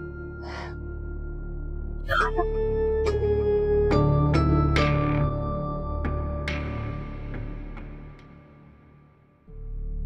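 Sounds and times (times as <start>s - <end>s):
breathy intake of breath: 0.4s - 0.9s.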